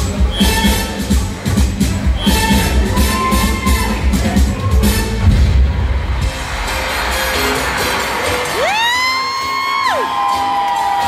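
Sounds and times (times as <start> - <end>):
loud club music: 0.0 - 11.0
audience whooping: 6.4 - 11.0.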